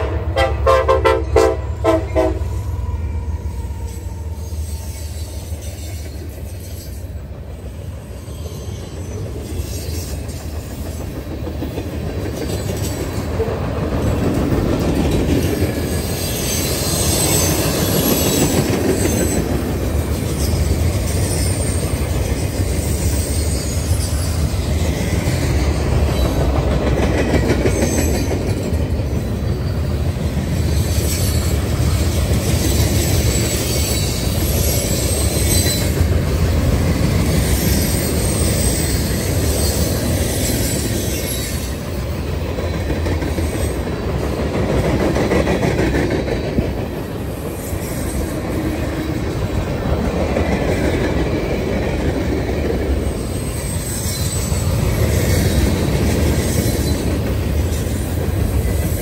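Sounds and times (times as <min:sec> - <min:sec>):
train wheels rumbling on rails: 0:00.0 - 0:59.0
high wheel squeals: 0:02.1 - 0:11.1, 0:15.8 - 0:26.5, 0:27.7 - 0:36.0, 0:37.2 - 0:43.9, 0:53.0 - 0:59.0.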